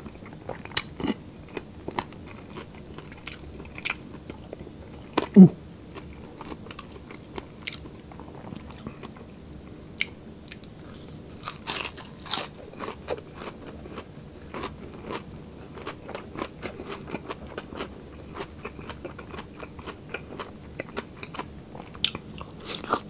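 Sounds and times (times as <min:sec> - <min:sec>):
crunchy chewing: 0:00.0 - 0:09.3, 0:10.0 - 0:23.0.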